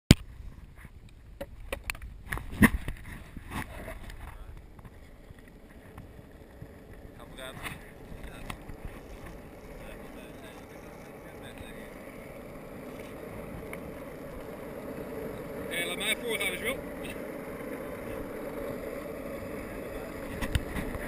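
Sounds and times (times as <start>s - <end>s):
skateboard wheels rolling on asphalt: 0.1s - 21.0s.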